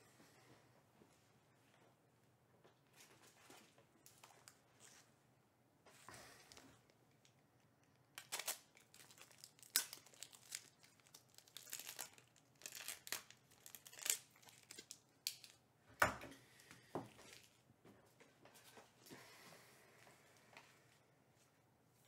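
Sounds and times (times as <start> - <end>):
plastic wrapping crinkling and tearing: 7.1 - 15.6.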